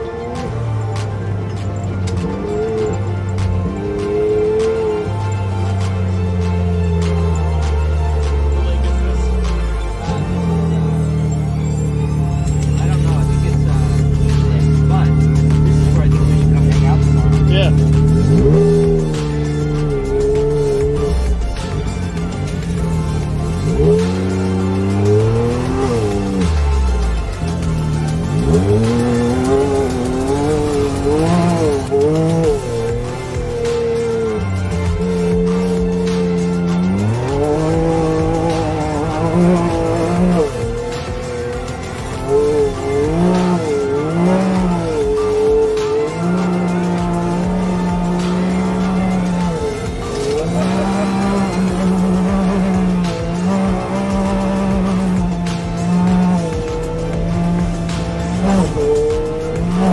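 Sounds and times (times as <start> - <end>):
utility vehicle engine revving: 0.0 - 59.9.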